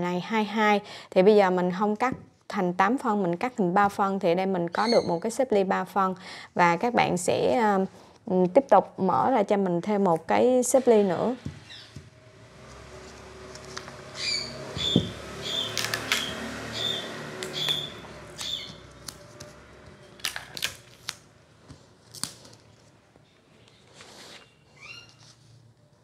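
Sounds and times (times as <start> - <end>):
large scissors cutting paper: 14.8 - 21.3.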